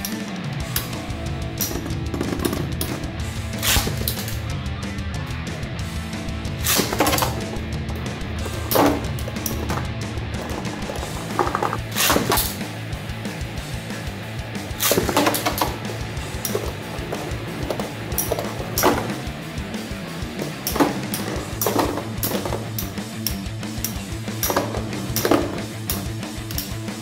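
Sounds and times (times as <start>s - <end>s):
rock music: 0.0s - 27.0s.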